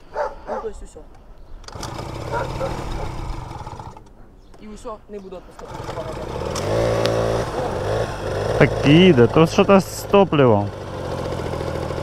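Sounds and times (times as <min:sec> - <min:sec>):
scooter engine kick-started: 0:01.6 - 0:04.1, 0:05.6 - 0:12.0.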